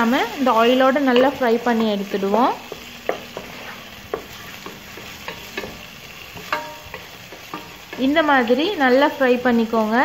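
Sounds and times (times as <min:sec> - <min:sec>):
onions sizzling in oil: 0:00.0 - 0:10.0
wooden spatula scraping a pan: 0:00.2 - 0:08.6.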